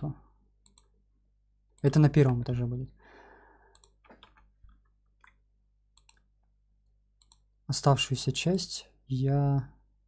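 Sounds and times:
computer mouse clicks: 0.6 - 0.9, 3.7 - 7.5.

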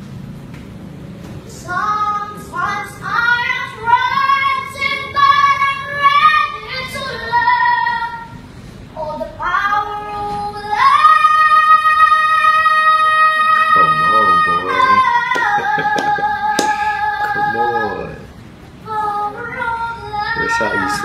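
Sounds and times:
child singing: 1.5 - 8.4, 9.0 - 18.2, 18.8 - 21.0.

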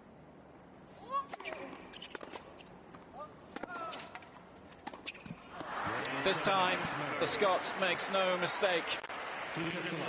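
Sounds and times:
tennis ball bouncing: 1.3 - 5.7
shoes squeaking on court: 1.4 - 3.1, 3.8 - 5.5.

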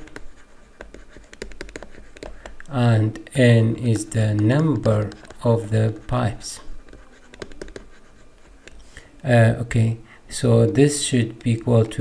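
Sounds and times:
stylus tapping and scratching: 0.0 - 8.9, 10.4 - 12.0.

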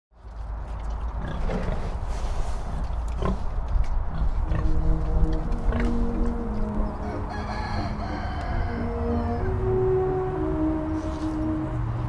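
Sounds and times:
steady low rumble: 0.2 - 12.0
pigs grunting: 0.4 - 9.6.

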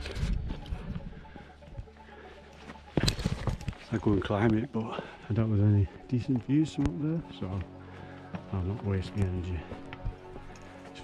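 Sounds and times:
footsteps on stony path: 0.0 - 11.0.

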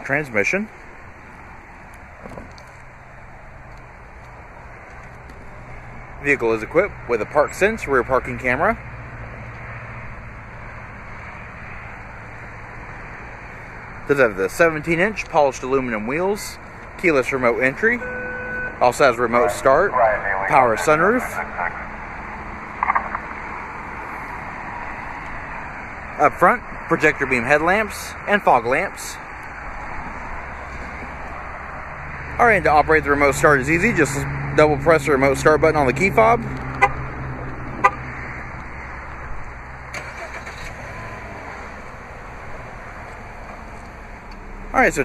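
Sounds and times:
car engine idling: 0.0 - 45.0
outdoor background noise: 0.0 - 45.0.

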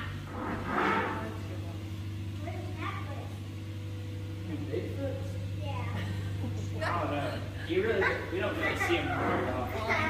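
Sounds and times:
boat motor humming: 0.0 - 10.0.

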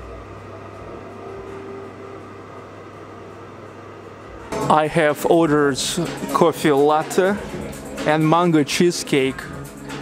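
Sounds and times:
low machinery hum: 0.0 - 10.0.

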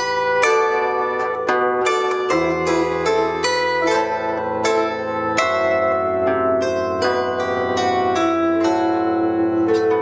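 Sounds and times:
bandura plucked notes and chords: 0.0 - 10.0.

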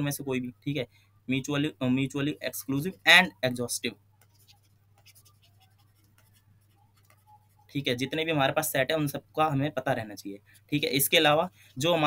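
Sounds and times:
stylus tapping on tablet screen: 4.2 - 7.7.

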